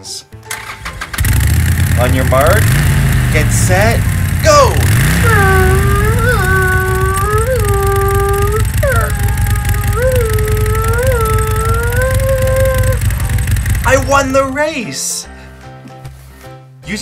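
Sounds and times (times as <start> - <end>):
race car engine droning: 1.1 - 14.6.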